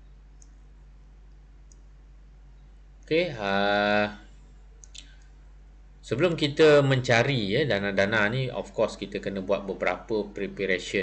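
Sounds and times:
steady low hum: 0.0s - 11.0s
faint short clicks: 4.8s - 5.4s.

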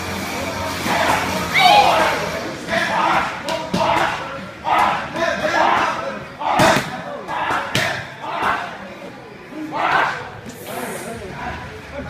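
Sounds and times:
gym noise: 0.2s - 11.1s
person shouting: 1.5s - 2.2s.

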